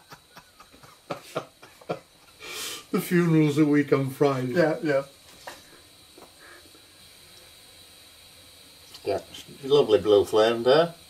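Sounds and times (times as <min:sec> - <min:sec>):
gas burner hissing: 0:00.0 - 0:11.0.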